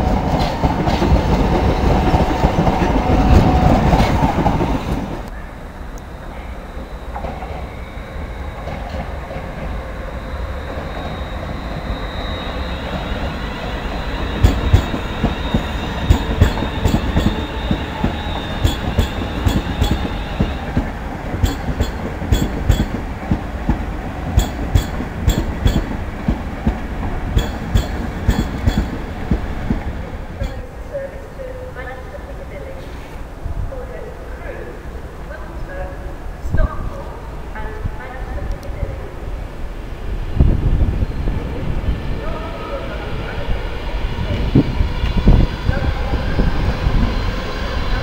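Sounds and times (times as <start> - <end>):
electric train passing: 0.0 - 48.0
thin high whine: 5.3 - 20.6.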